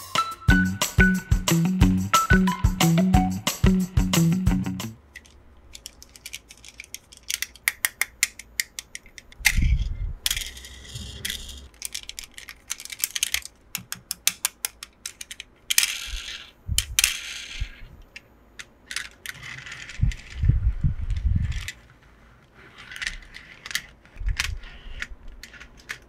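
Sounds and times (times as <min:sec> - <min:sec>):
plastic toy cars clicking: 0:05.0 - 0:26.0
plastic rolling on plastic: 0:18.8 - 0:26.0.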